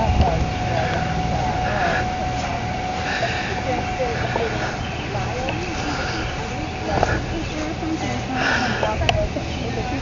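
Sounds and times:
faint distant voices: 0:00.0 - 0:10.0
steady low rumble: 0:00.0 - 0:10.0
thin high whine: 0:00.0 - 0:10.0.

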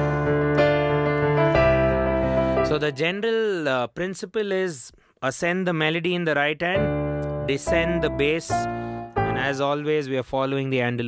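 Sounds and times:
digital piano minor chords: 0:00.0 - 0:03.2, 0:06.3 - 0:10.8.

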